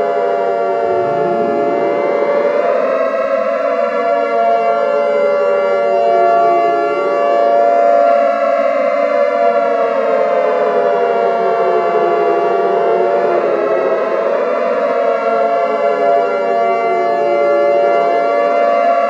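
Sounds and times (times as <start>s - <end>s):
warning siren wailing: 0.6s - 19.0s.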